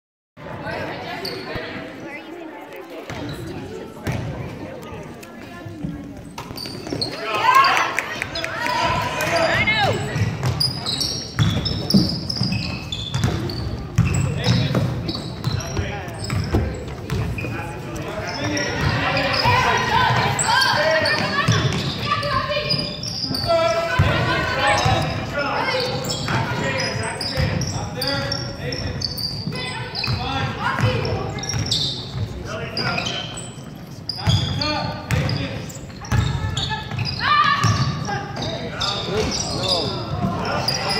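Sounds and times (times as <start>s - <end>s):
basketball bouncing on wooden floor: 11.4s - 15.6s, 16.2s - 17.4s.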